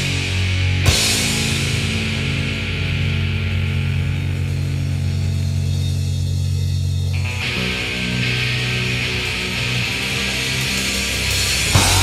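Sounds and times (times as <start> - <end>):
rock guitar chord ringing: 0.0 - 12.0.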